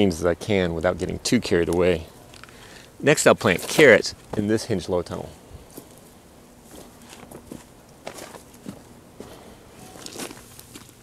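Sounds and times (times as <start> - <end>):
footsteps crunching on dry leaves: 5.6 - 11.0.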